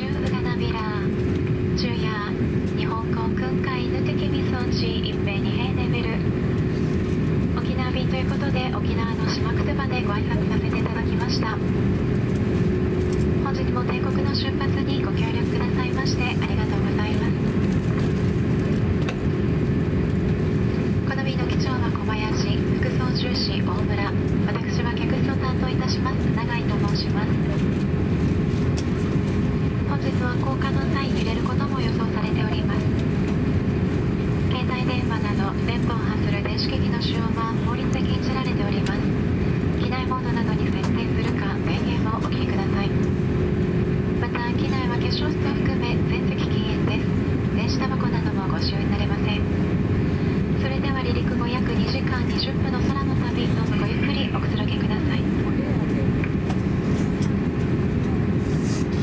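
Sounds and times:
constant hum: 0:00.0 - 0:59.0
passengers chatting: 0:00.0 - 0:59.0
ventilation air rushing: 0:00.0 - 0:59.0.

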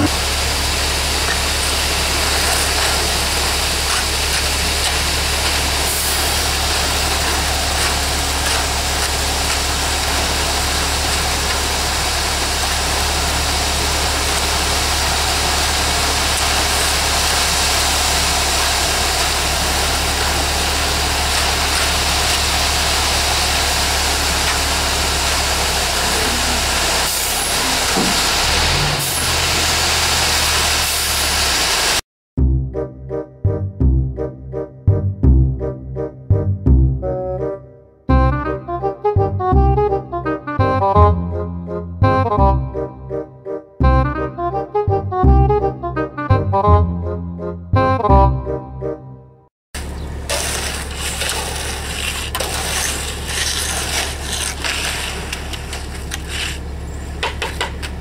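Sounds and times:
truck diesel engine running: 0:00.0 - 0:32.0, 0:49.8 - 0:58.0.

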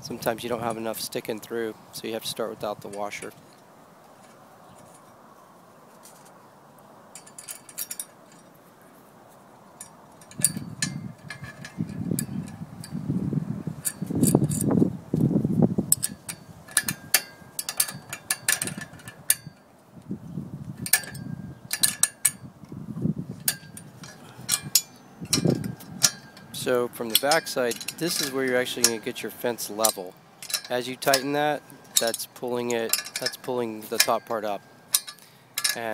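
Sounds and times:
wrench and nuts clinking on metal: 0:07.1 - 0:08.5, 0:09.8 - 0:13.0, 0:13.8 - 0:14.7, 0:15.9 - 0:19.7, 0:20.8 - 0:22.5, 0:23.3 - 0:35.9
handling rumble: 0:10.2 - 0:35.9.

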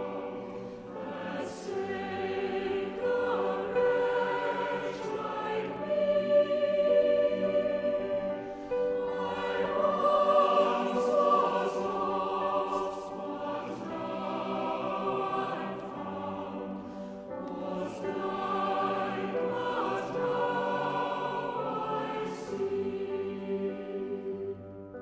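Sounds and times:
choir singing held notes: 0:00.0 - 0:24.6.

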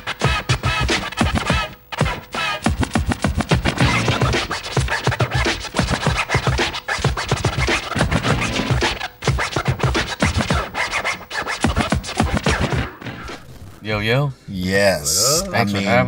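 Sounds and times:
hip-hop beat: 0:00.0 - 0:13.3
vinyl record scratching: 0:00.0 - 0:14.0.

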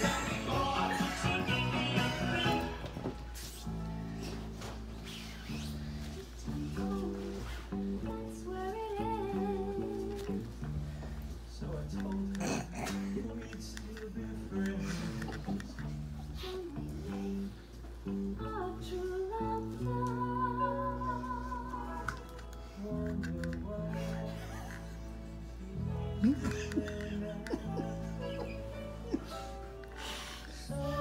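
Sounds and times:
pop song with guitar and vocals: 0:00.0 - 0:03.4, 0:06.4 - 0:31.0.

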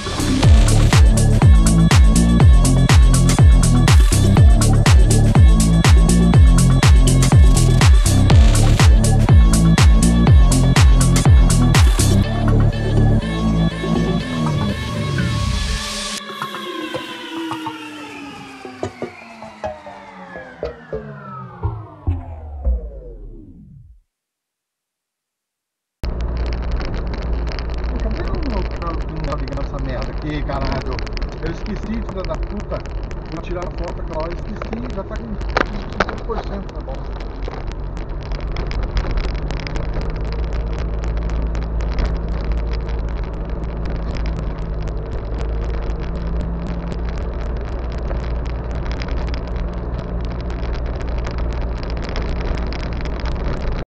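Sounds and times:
vehicle engine and road rumble: 0:00.0 - 0:16.2, 0:26.0 - 0:53.8.

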